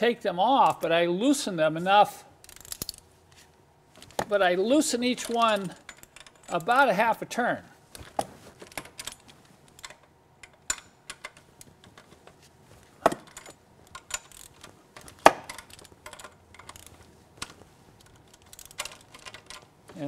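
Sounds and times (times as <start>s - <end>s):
ratchet wrench clicking: 2.4s - 3.0s, 18.3s - 19.3s.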